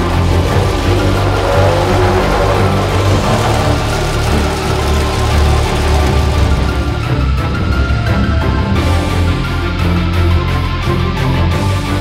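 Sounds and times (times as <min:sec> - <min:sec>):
background music with low notes: 0:00.0 - 0:12.0.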